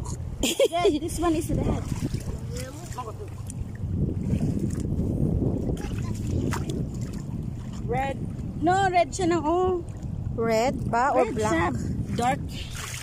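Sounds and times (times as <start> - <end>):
wind on microphone: 0.0 - 13.0
water lapping at shore: 0.6 - 13.0.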